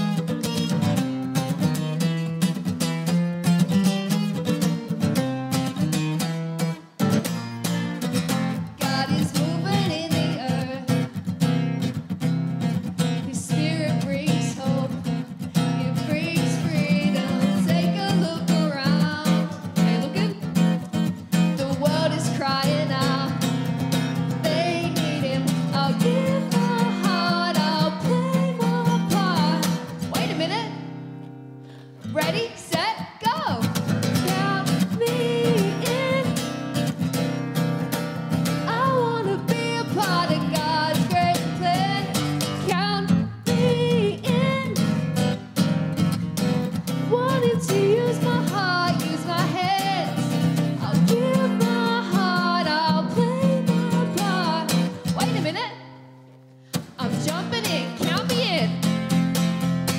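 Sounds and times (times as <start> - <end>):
strummed acoustic guitar: 0.0 - 59.9
woman singing: 8.3 - 11.9, 12.8 - 31.1, 32.0 - 37.0, 38.4 - 45.4, 46.4 - 56.1, 56.7 - 59.9.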